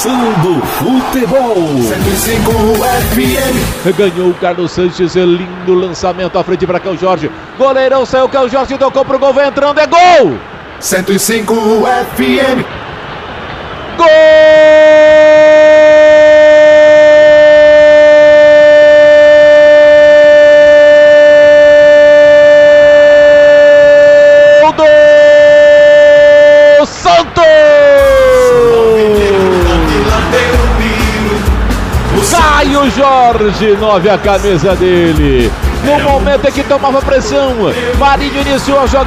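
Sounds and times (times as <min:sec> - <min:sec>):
commentator shouting goal: 0:00.0 - 0:04.6, 0:09.8 - 0:12.7, 0:14.0 - 0:22.5, 0:23.3 - 0:39.0
music: 0:01.6 - 0:04.4, 0:28.0 - 0:39.0.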